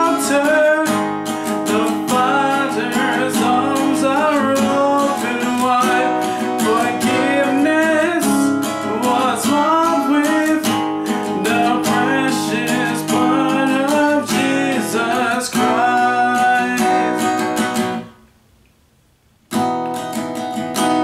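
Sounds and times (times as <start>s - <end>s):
man singing: 0.0s - 18.1s
acoustic guitar strumming: 0.0s - 18.3s, 19.5s - 21.0s.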